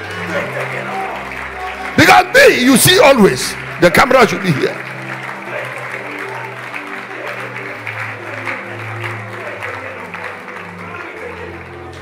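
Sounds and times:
congregation clapping: 0.0 - 12.0.

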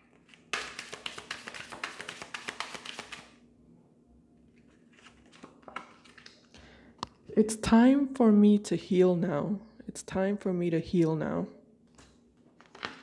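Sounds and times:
cards shuffling: 0.1 - 3.3, 4.7 - 6.5.

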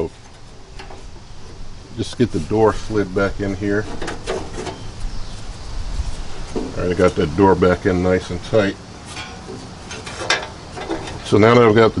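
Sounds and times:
scrapes and taps on metal: 9.1 - 11.2.

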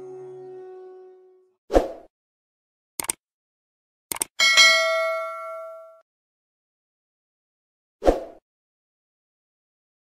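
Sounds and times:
short clicks: 3.0 - 3.2, 4.1 - 4.4
bell ringing: 4.4 - 6.0.

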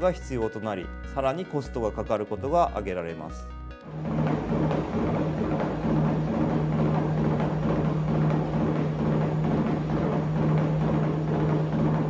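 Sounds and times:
hooves striking treadmill belt: 3.9 - 12.0
treadmill motor hum: 3.9 - 12.0.

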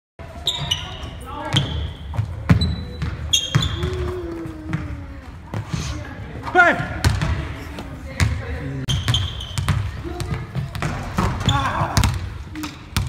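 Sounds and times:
basketballs bouncing on hardwood floor: 0.6 - 5.7, 7.0 - 13.0.

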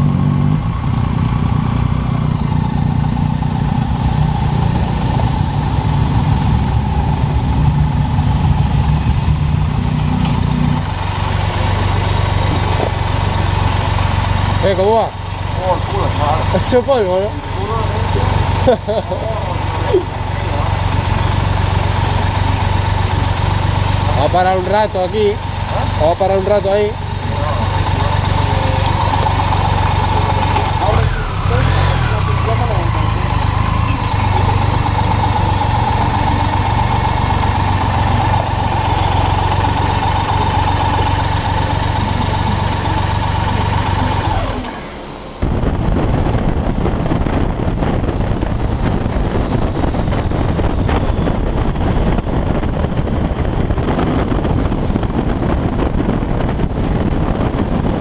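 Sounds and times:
motorcycle engine idling: 0.0 - 45.5
motorcycle riding at highway speed: 0.0 - 58.0
wind noise on microphone: 45.4 - 58.0.

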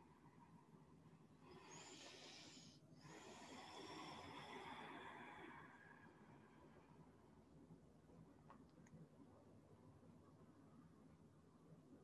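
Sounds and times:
faint airy breathing: 0.0 - 7.5.

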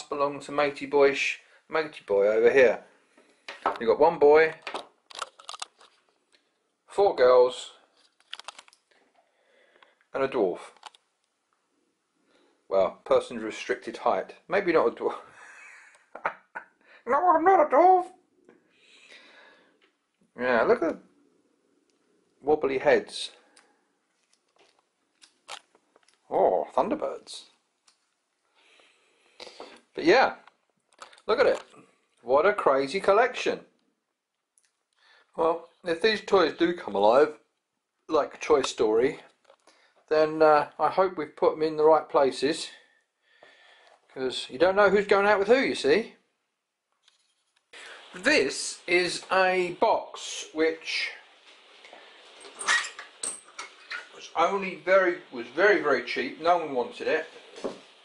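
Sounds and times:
plastic doll clicking: 4.8 - 5.8.

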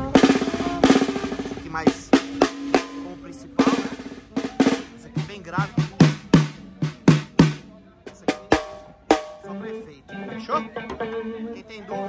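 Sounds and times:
sticks striking snare drum: 0.0 - 9.6
low-pitched drum ringing hits: 1.8 - 9.6.

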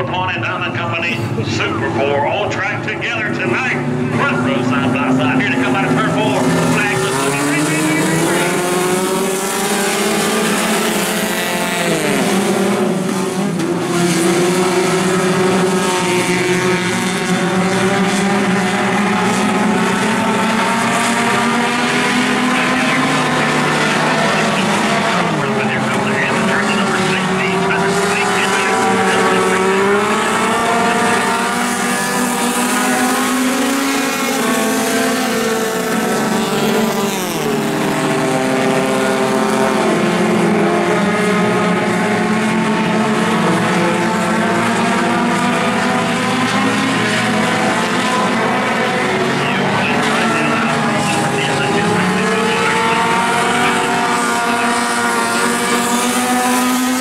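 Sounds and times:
race car engines running hard: 0.0 - 57.0.

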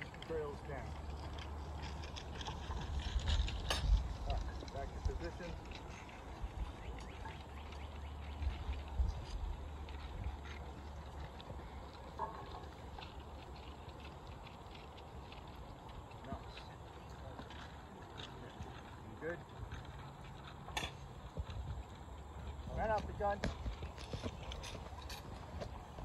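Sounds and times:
distant voices: 0.0 - 26.0.

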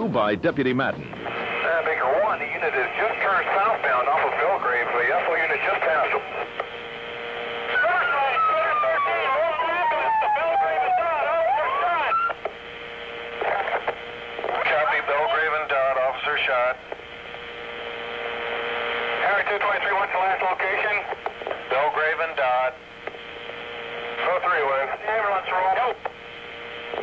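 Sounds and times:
garbled police radio voices: 0.0 - 12.4, 13.2 - 17.0, 18.2 - 22.8, 23.6 - 26.2
steady hum tone: 0.0 - 27.0.

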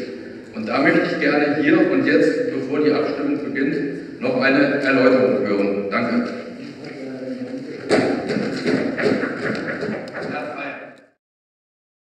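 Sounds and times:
people clapping: 7.7 - 10.9.

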